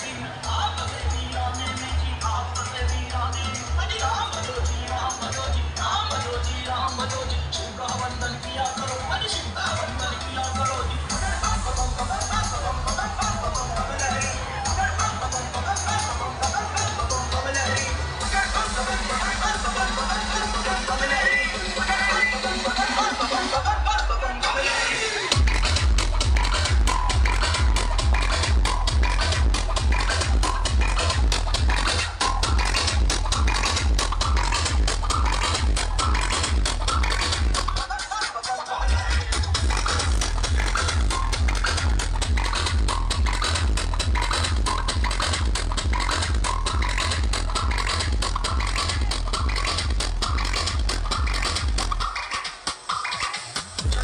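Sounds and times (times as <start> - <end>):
loud electronic dance music: 0.0 - 54.0.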